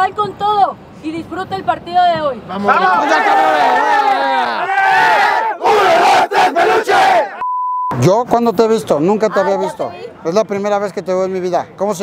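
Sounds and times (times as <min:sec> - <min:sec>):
team shouting a war cry: 0:02.5 - 0:07.4
censor bleep: 0:07.4 - 0:08.0.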